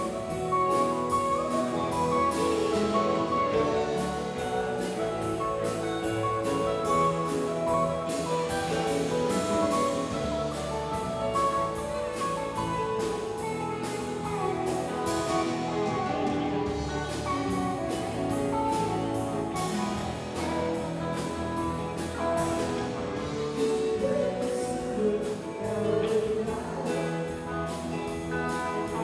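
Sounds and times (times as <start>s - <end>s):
drum kit beat with cymbals: 0.0s - 29.0s
guitar notes: 0.0s - 29.0s
sustained keyboard notes: 0.0s - 29.0s.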